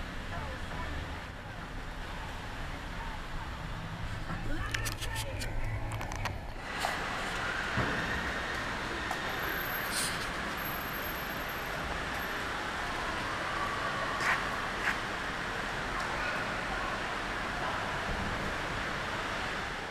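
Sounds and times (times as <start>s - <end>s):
wet tyre hiss: 9.6s - 10.7s.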